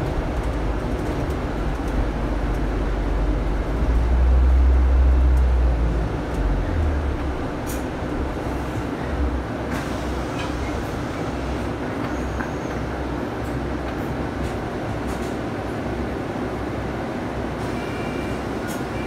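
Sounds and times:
bus engine and road rumble: 0:00.0 - 0:19.0.

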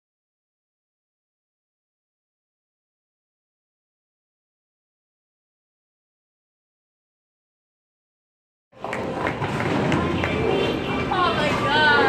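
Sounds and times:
bowling ball rolling on wooden lane: 0:08.8 - 0:11.1.

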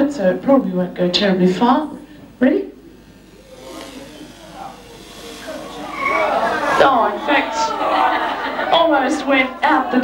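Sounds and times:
rubber band toy whirring: 0:03.2 - 0:08.4.

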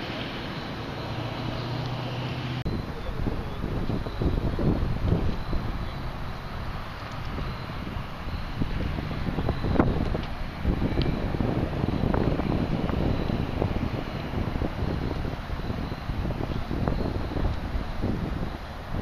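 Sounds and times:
wind blowing across microphone: 0:02.6 - 0:19.0.

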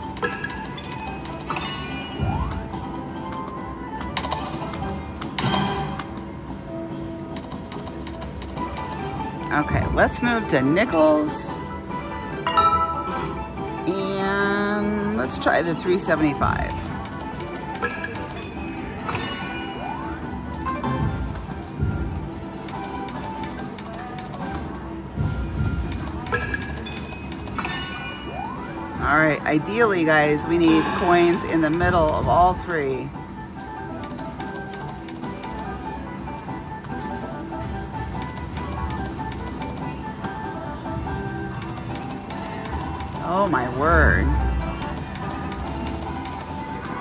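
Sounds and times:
slot machine music and effects: 0:00.0 - 0:47.0.

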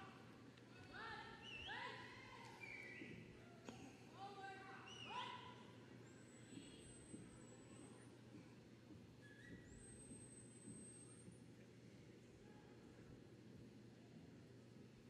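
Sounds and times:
faint crowd murmur: 0:00.0 - 0:09.2, 0:10.8 - 0:15.0.

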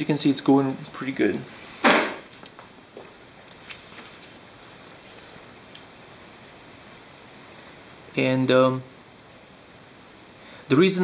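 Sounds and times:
steady faint hiss: 0:00.0 - 0:11.0.

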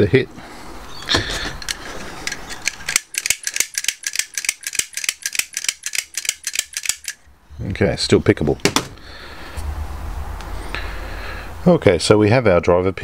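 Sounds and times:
lock pick scraping: 0:01.2 - 0:07.2
rapid metallic lock clicks: 0:01.6 - 0:07.2.

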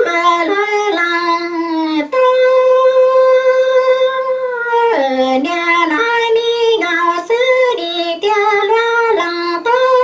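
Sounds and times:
high-pitched voice singing: 0:00.0 - 0:10.0.

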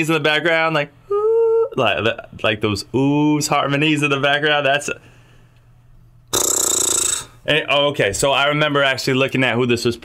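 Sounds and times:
man making raspy throat noise: 0:06.3 - 0:07.4.

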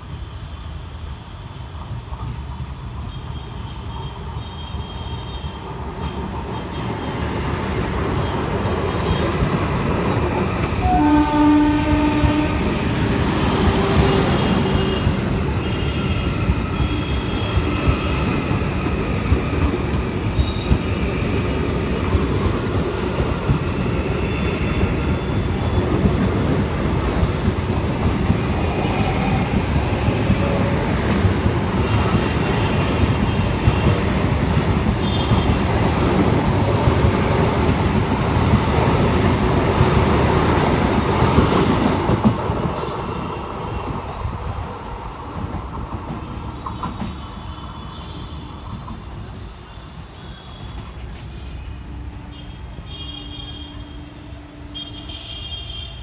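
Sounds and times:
train wheels rumbling on rails: 0:00.0 - 0:56.0
train horn blast: 0:10.8 - 0:13.0, 0:50.2 - 0:56.0.

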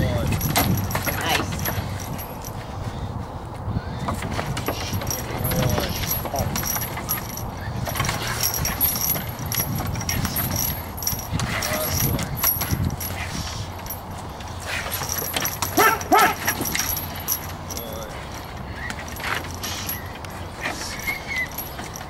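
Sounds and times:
chain jangling: 0:00.0 - 0:03.1, 0:04.1 - 0:22.0.

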